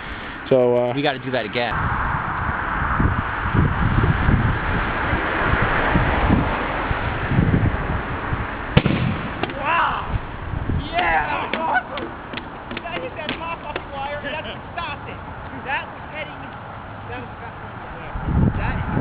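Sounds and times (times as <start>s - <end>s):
rushing noise with low rumble: 1.6s - 11.0s, 17.9s - 19.0s
distant shouted calls: 9.3s - 18.1s.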